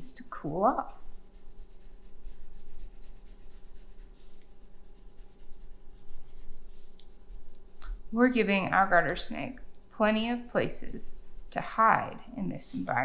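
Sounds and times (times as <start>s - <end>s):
coloured pencil scratching on paper: 0.0s - 13.0s.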